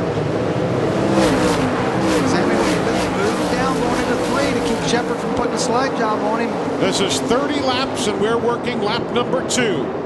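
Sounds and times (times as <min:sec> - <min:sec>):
race car engines passing by: 0:00.0 - 0:10.0.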